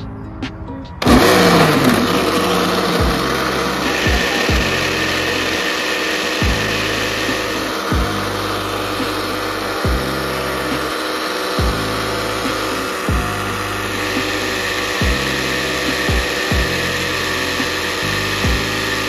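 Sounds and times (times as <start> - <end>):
music with deep bass notes: 0.0 - 19.0
blender motor running: 1.0 - 19.0.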